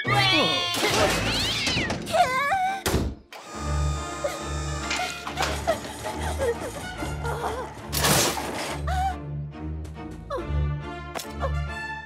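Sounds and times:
light background music: 3.4 - 12.0.

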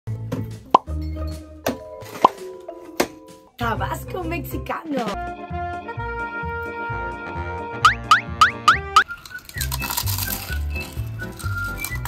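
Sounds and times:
intro music: 7.5 - 9.1
cartoon plop sound effects: 7.8 - 9.0.

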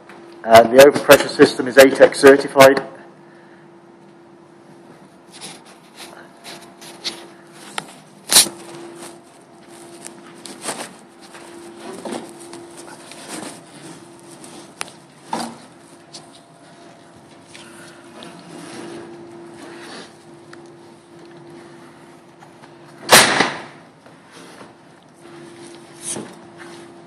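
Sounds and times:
steady low hum: 0.0 - 27.0.

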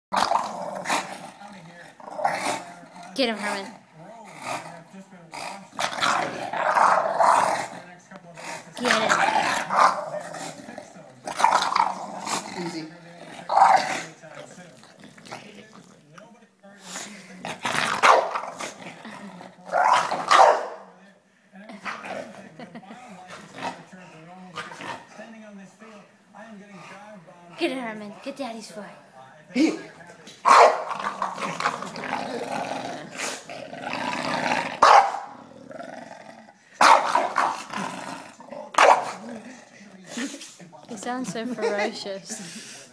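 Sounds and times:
dog growling: 0.1 - 16.1, 16.9 - 21.0, 21.7 - 26.0, 29.6 - 40.3
dog barking: 18.0 - 18.5, 19.7 - 20.9, 30.4 - 31.0, 34.8 - 35.3, 36.8 - 37.6, 38.8 - 39.2.

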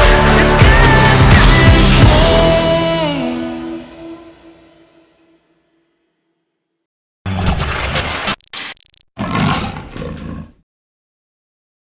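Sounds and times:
big cat roar: 9.2 - 10.6.

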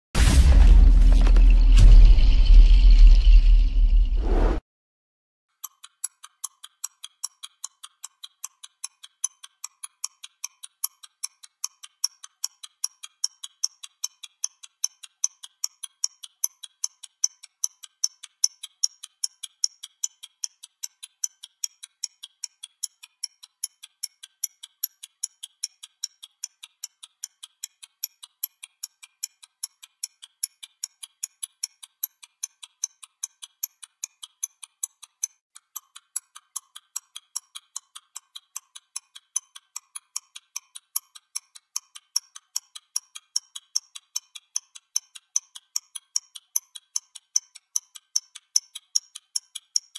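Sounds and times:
stopwatch ticking: 5.6 - 49.9.

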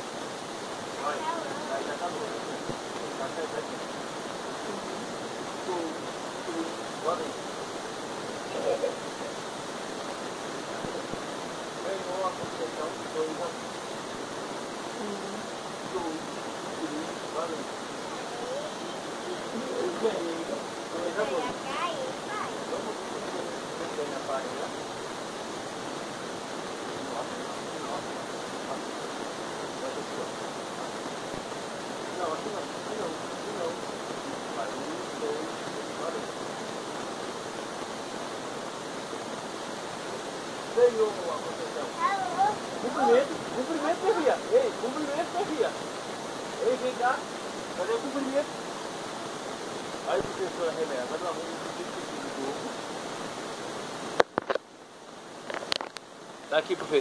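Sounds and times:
steady rushing hiss: 0.0 - 57.0
faint voices: 0.8 - 37.7, 38.6 - 53.3.

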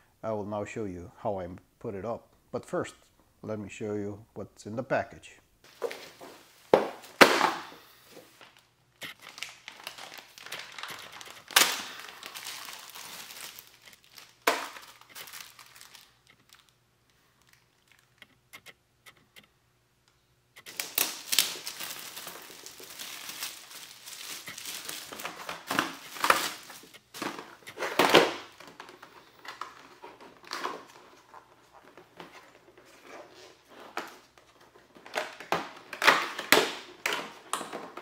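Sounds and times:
plastic packaging crinkling: 5.7 - 18.4, 20.6 - 38.0
sharp plastic clacks: 17.9 - 20.8.

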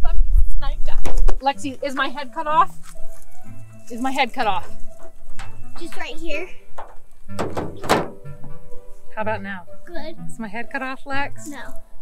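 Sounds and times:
soft background music: 0.0 - 12.0
dull thuds: 4.3 - 8.8.

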